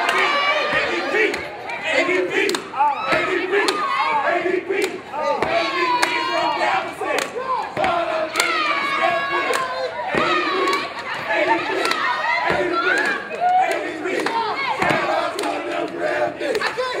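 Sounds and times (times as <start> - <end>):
crowd yelling and whooping: 0.0 - 17.0.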